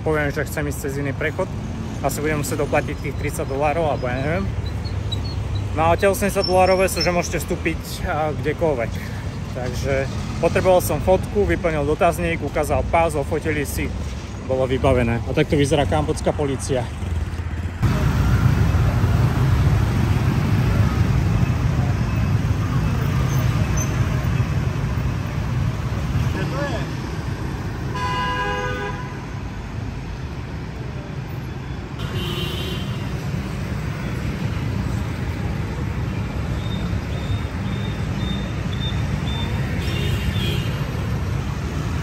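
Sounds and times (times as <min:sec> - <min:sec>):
motorbike traffic engine drone: 0:00.0 - 0:42.0
vehicle horn honking: 0:27.9 - 0:29.2
higher horn honk: 0:27.9 - 0:29.3.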